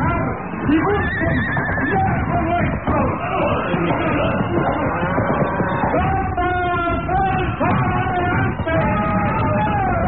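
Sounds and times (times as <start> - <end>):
busy background noise: 0.0 - 10.0
horse whinnying: 0.8 - 2.3.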